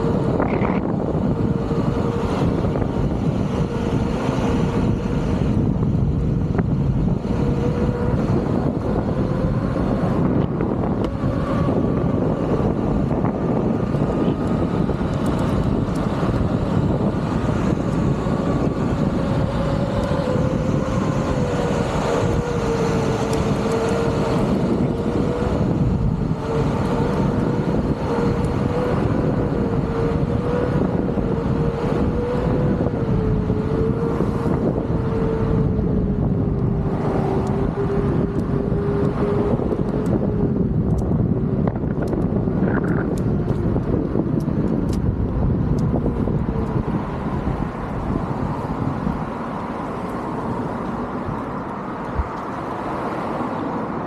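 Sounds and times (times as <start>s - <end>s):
steady motor whine: 0.0s - 54.0s
wind rushing over microphone: 0.0s - 54.0s.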